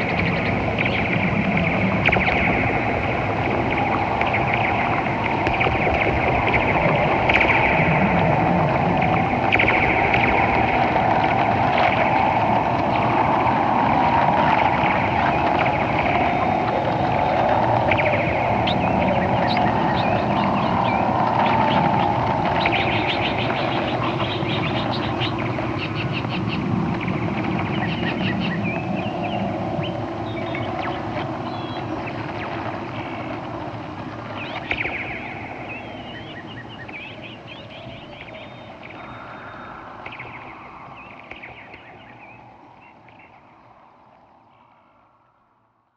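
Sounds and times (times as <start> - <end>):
steady rushing drone: 0.0 - 43.6
chirps and ticks: 0.0 - 43.8.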